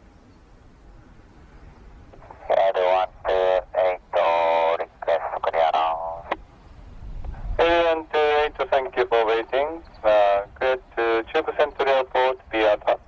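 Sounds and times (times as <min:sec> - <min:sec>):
radio voice transmissions: 0:02.1 - 0:06.5, 0:07.2 - 0:13.0.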